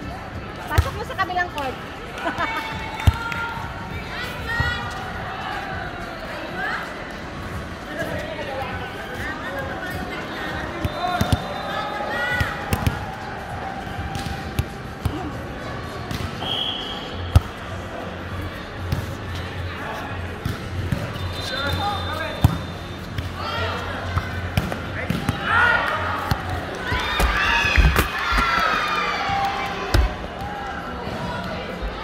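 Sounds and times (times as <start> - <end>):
players calling and shouting: 0.5 - 32.0.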